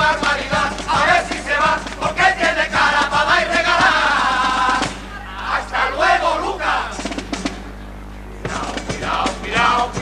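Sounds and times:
male chorus singing: 0.0s - 7.2s, 8.4s - 10.0s
voices shouting: 3.3s - 7.1s.

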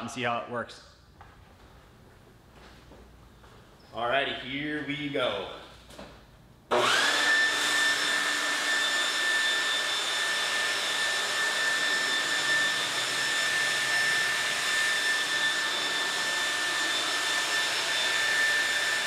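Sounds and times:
leaf blower motor whine: 6.7s - 19.0s.

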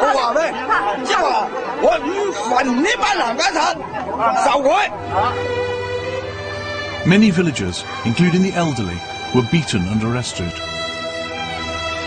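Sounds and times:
people talking loudly: 0.0s - 10.6s.

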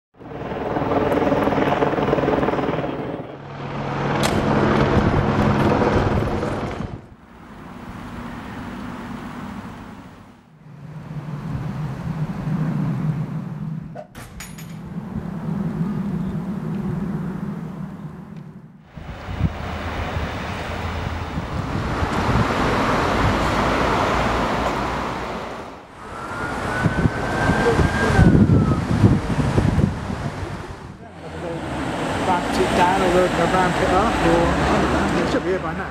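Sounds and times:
motor vehicle engines running: 1.1s - 35.9s
high tone rising and falling: 14.8s - 35.5s.

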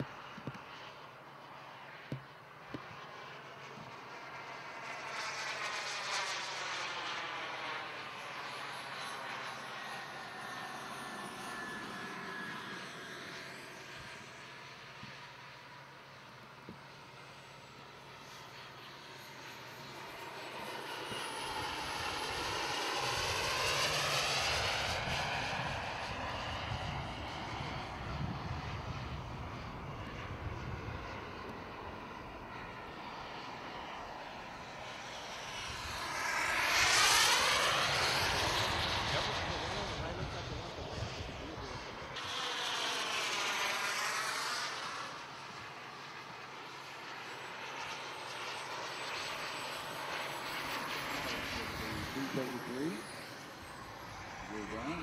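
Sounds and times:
model jet turbine whining past: 0.0s - 55.0s.

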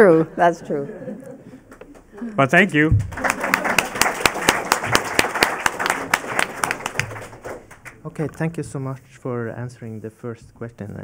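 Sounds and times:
audience applause: 1.7s - 8.0s.

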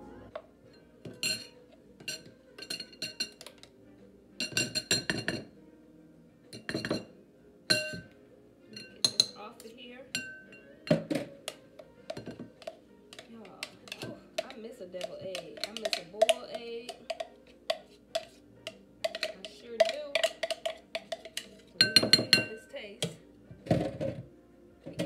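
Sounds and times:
utensil clinking against bowl: 1.0s - 3.7s, 4.4s - 5.5s, 6.6s - 7.1s, 7.7s - 8.1s, 8.8s - 9.4s, 10.1s - 23.2s.

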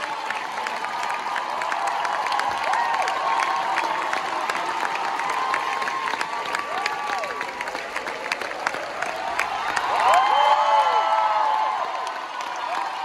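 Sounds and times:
audience applauding: 0.0s - 13.0s
people cheering: 0.0s - 13.0s.

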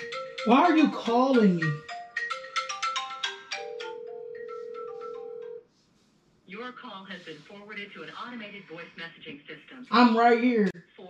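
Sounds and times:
mobile phone ringtone melody: 0.0s - 5.7s.

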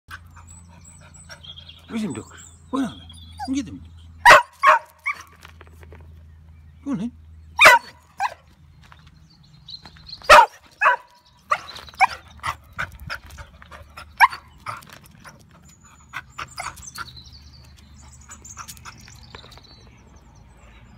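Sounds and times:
dog barking: 4.2s - 5.3s, 7.6s - 8.4s, 10.3s - 12.2s.

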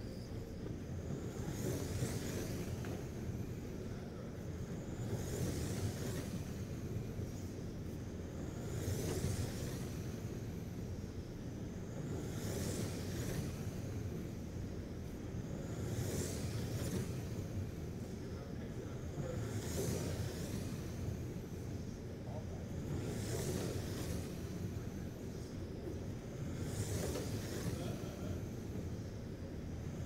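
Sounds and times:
low rumble of running cars: 0.0s - 30.0s
rc car motors whining: 0.0s - 30.0s.

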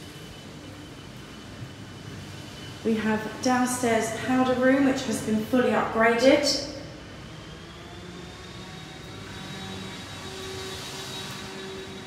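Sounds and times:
mechanical hum with high whine: 0.0s - 12.0s.

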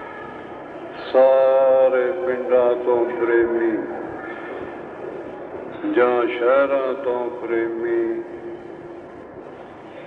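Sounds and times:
tape hiss and rumble: 0.0s - 10.0s.

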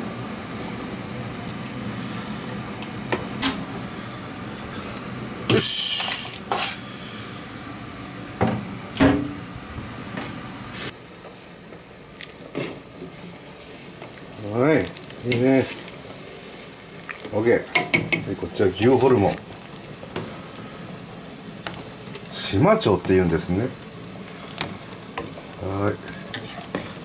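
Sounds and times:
steady hiss: 0.0s - 27.0s.

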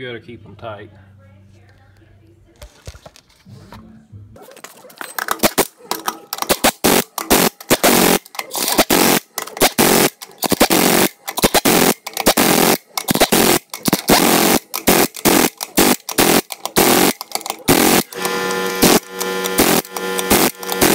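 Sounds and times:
impact wrench hammering lug nuts: 4.6s - 20.9s.

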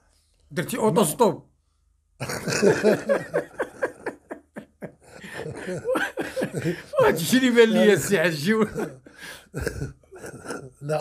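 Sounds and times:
men laughing: 2.2s - 11.0s.

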